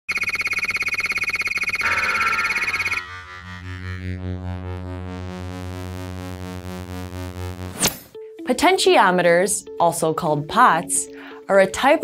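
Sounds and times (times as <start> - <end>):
pulsing high electronic buzz: 0.1 - 8.0
low synthesizer drone: 1.7 - 7.8.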